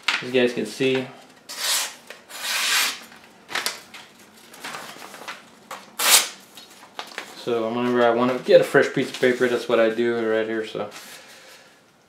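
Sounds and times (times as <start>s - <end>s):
paper rustling: 3.0s - 10.1s
machete slicing paper: 6.0s - 6.4s.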